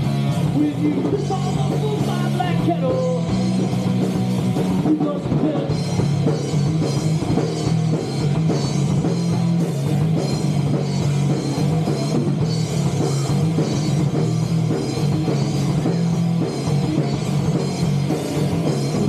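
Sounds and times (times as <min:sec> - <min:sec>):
bass guitar: 0:00.0 - 0:19.0
drum kit: 0:00.0 - 0:19.0
electric guitar: 0:00.0 - 0:19.0.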